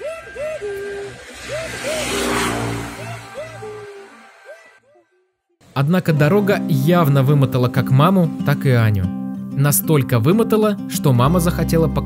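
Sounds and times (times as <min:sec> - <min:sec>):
car driving past: 0:00.2 - 0:04.8
background music with repeating melody: 0:06.2 - 0:12.0.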